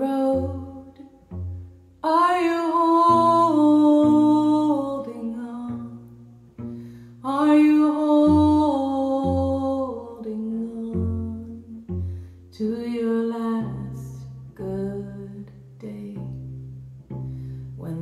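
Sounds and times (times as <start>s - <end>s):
low cello notes: 0.0s - 18.0s
woman singing slowly: 2.0s - 5.8s.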